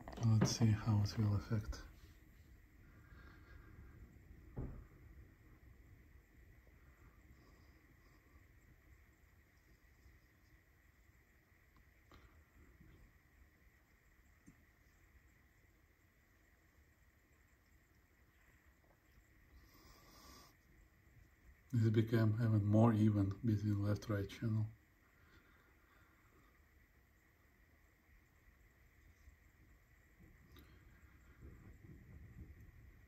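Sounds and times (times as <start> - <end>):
soft thump: 4.5 - 5.0.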